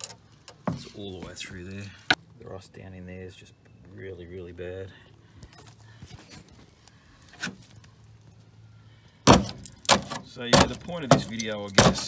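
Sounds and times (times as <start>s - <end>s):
crunching scrape through rust: 9.2s - 12.0s.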